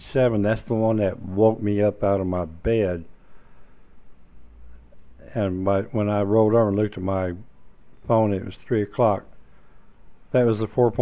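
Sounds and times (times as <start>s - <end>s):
low hum: 0.0s - 11.0s
thin faint high tone: 2.8s - 11.0s.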